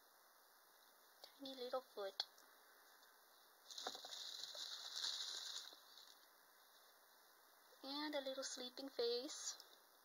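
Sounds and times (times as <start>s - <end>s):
plastic bag crinkling: 3.6s - 6.3s.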